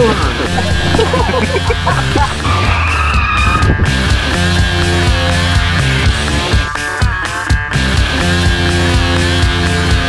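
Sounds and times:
car tyres squealing: 0.0 - 4.0
background music: 0.0 - 10.0.

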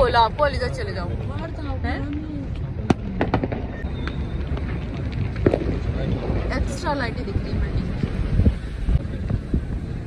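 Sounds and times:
firecrackers cracking: 1.4 - 8.4
low rumble: 2.2 - 10.0.

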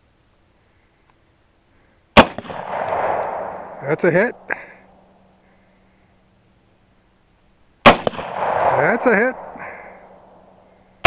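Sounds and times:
rifle shot: 2.2 - 5.0, 7.8 - 10.6.

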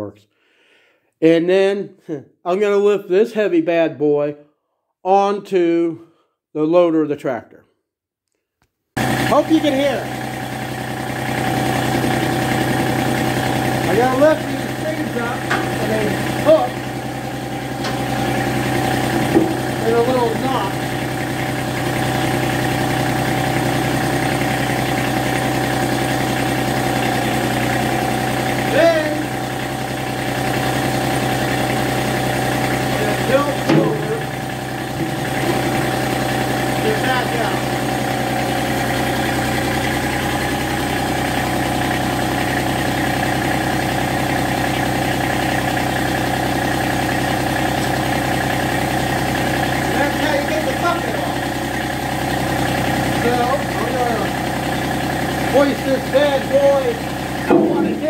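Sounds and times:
diesel tractor engine running: 9.0 - 58.0.

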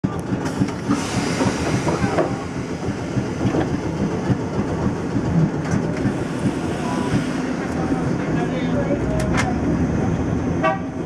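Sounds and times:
tram interior rumble: 0.0 - 11.0.

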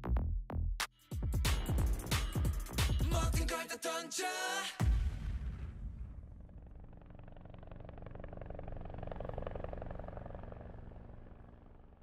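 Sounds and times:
low fluttering engine drone: 6.2 - 12.0.

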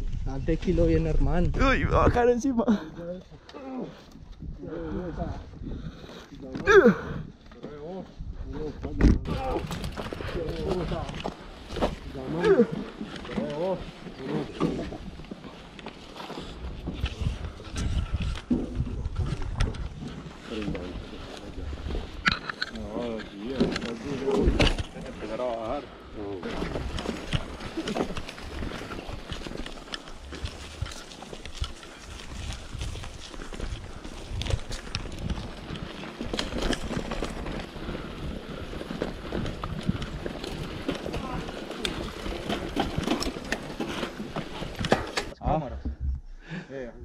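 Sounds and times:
mountain bikes knocking: 3.0 - 46.6.

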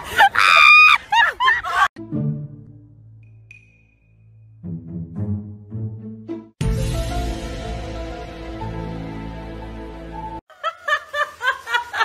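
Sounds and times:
background music: 2.0 - 10.4.

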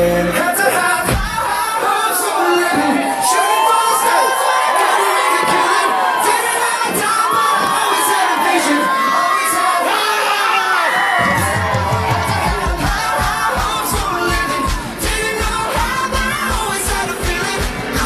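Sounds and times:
dance music: 0.0 - 18.0
audience cheering and screaming: 0.2 - 18.0
pulsing bass beat: 11.2 - 18.0.

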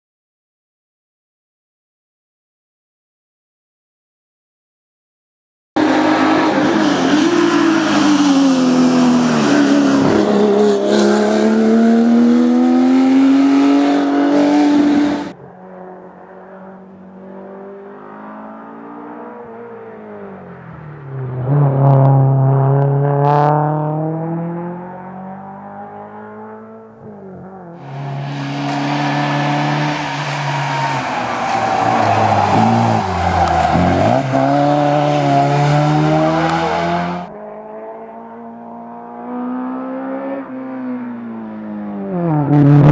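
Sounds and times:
racing car engines revving: 5.8 - 42.9.

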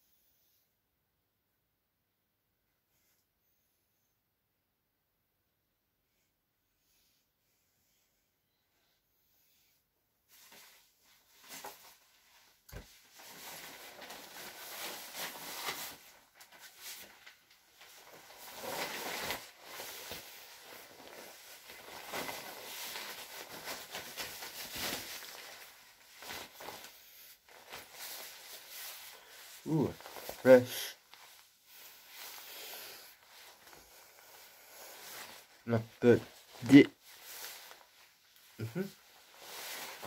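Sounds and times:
jacket fabric rustling: 10.3 - 40.0.

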